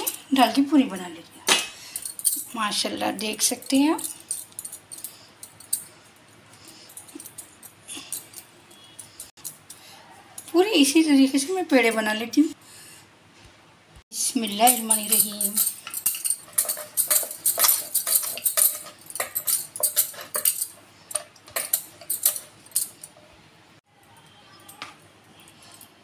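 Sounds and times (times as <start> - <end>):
metal bangles jingling: 0.0 - 1.1, 1.9 - 11.0, 14.3 - 23.4, 24.0 - 26.0.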